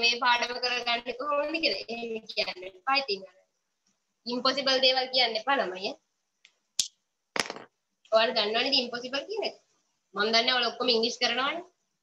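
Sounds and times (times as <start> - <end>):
woman speaking: 0.0 - 3.4, 4.2 - 6.0, 8.1 - 9.6, 10.2 - 11.7.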